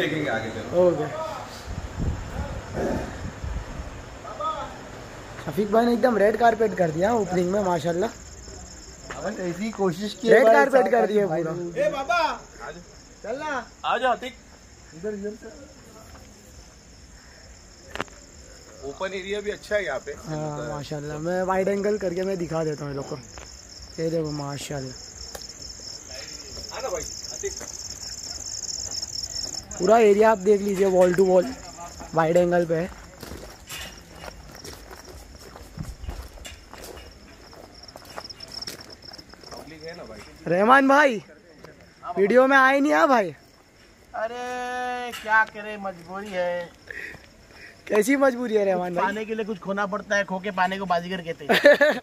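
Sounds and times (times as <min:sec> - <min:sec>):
crickets chirping: 0:00.0 - 0:52.0
footsteps on stony dirt path: 0:25.3 - 0:30.0, 0:30.6 - 0:40.4.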